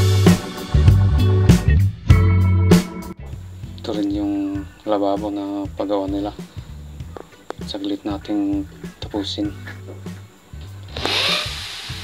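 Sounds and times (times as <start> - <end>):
background music with bass beat: 0.0 - 12.0
power tool grinding into concrete: 10.9 - 12.0.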